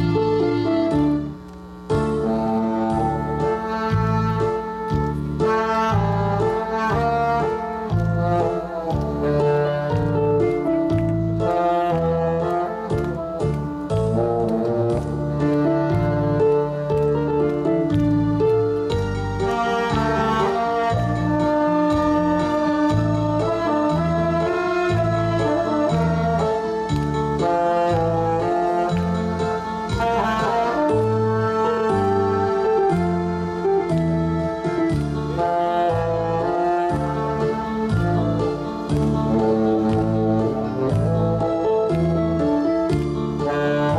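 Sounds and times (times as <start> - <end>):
recorded accompaniment: 0.0 - 43.9
steady bass line: 0.0 - 43.9
tenor saxophone melody: 0.0 - 43.9.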